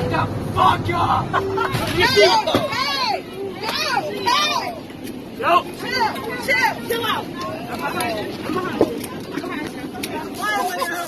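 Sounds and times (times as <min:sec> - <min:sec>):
people yelling: 0:00.0 - 0:08.9.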